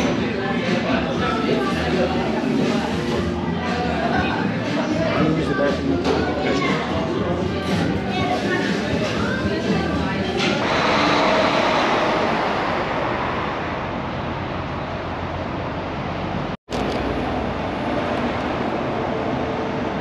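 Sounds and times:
passing cars: 10.6s - 20.0s.

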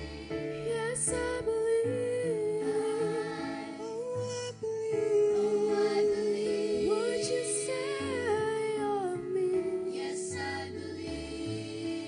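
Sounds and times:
children's choir singing: 0.0s - 1.5s, 2.6s - 4.0s, 5.4s - 8.4s, 9.8s - 12.0s.

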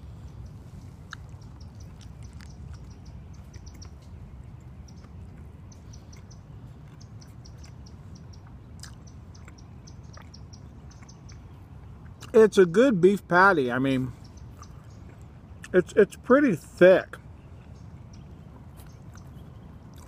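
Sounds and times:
small bird chirping: 0.0s - 12.7s, 13.7s - 16.0s, 17.2s - 20.0s
low outdoor rumble: 0.0s - 20.0s
chewing clicks: 1.0s - 12.4s, 14.3s - 15.8s, 17.6s - 20.0s.

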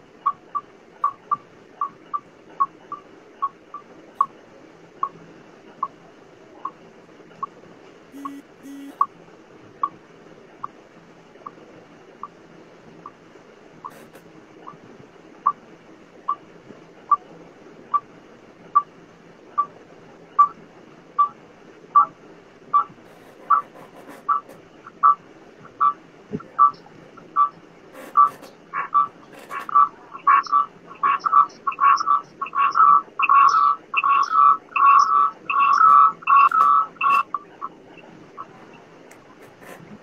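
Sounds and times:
short high-pitched pips: 8.2s - 9.0s.

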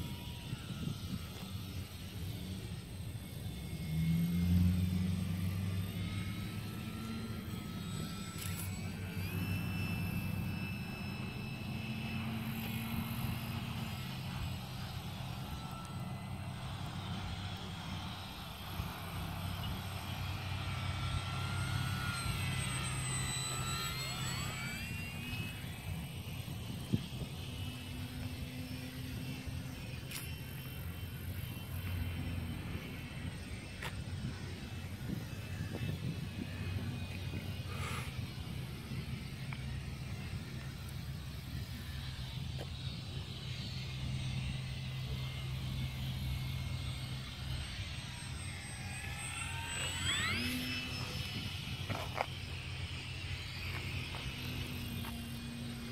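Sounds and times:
model plane motor whining: 0.0s - 55.9s.

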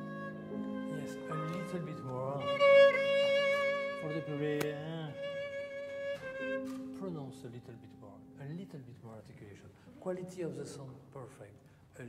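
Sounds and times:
violas bowing slow melody: 0.0s - 7.1s.

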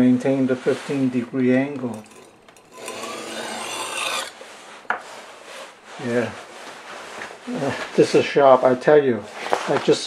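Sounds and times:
knife rasping on whetstone: 1.9s - 6.0s.

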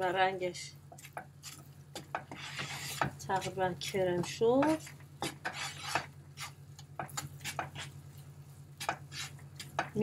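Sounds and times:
wooden spoon scraping frying pan: 0.9s - 10.0s.

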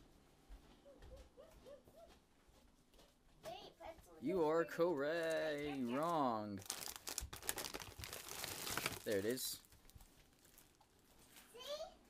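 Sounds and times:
snack packets crinkling: 4.6s - 11.5s.

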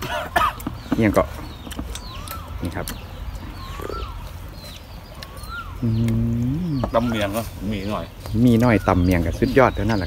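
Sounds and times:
bird whistled call: 2.0s - 3.0s, 3.6s - 7.5s.

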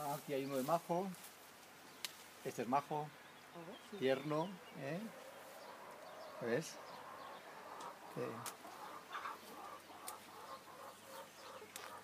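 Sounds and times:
chickens clucking: 2.9s - 12.0s.

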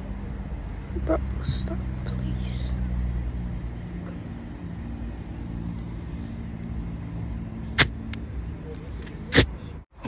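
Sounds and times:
low motor hum: 0.0s - 10.0s.

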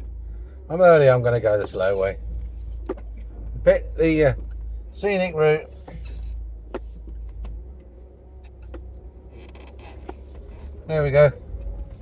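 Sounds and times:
engine and road rumble: 0.0s - 12.0s.

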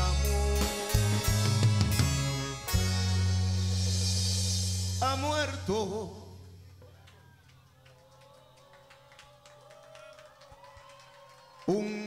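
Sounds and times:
live band music: 0.0s - 5.9s.

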